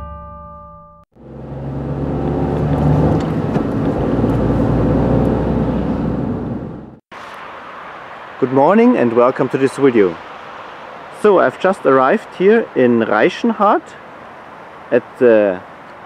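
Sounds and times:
car engine and road noise: 1.2 - 16.0.

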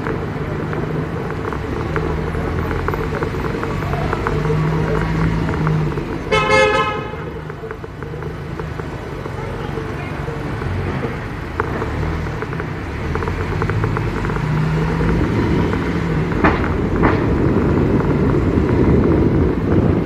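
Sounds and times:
low rumble of city traffic: 0.0 - 20.0
car horn toot: 6.3 - 7.3.

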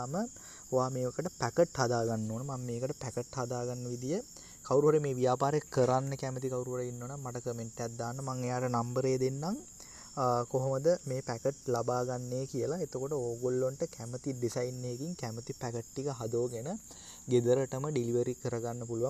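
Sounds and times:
faint high-pitched whine: 0.0 - 19.0.

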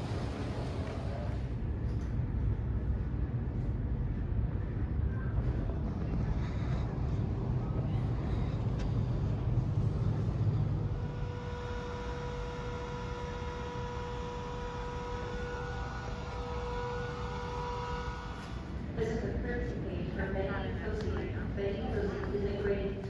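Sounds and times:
low rumble: 0.0 - 21.8
turbine whine: 0.0 - 23.0.

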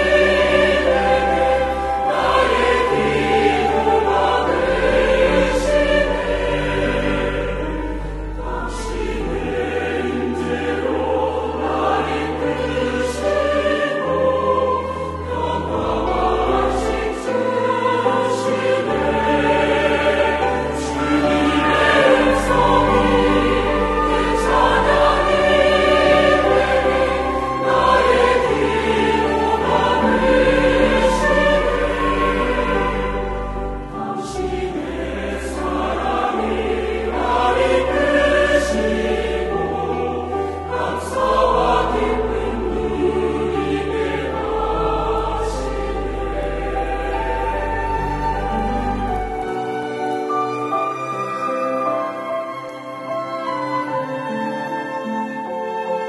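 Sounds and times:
choir singing a hymn: 0.0 - 56.0.

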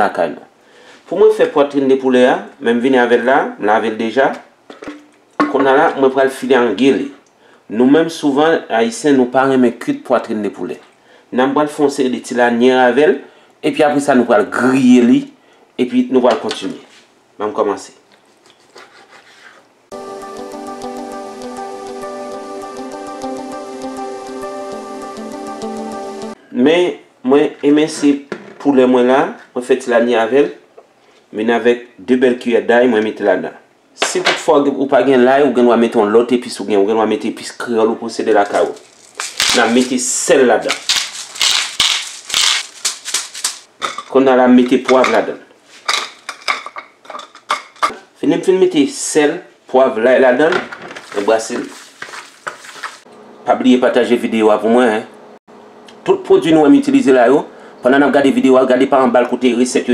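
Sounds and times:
music with held tones: 19.9 - 26.4
spice grinder crunching clicks: 38.5 - 40.0, 40.7 - 43.7.

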